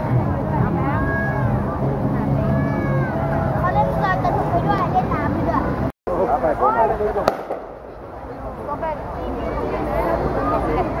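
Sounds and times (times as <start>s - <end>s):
crowd chatter: 0.0s - 11.0s
firework bang: 7.2s - 8.0s.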